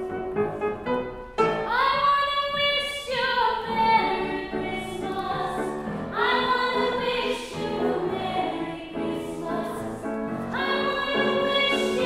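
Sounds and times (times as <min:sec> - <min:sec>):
grand piano: 0:00.0 - 0:12.0
woman singing: 0:10.6 - 0:12.0.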